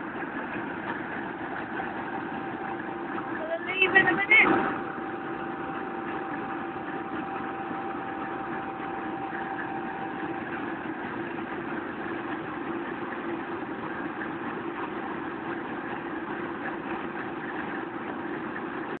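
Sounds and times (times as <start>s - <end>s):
diesel locomotive engine idling: 0.0s - 19.0s
thin steady whine: 0.0s - 19.0s.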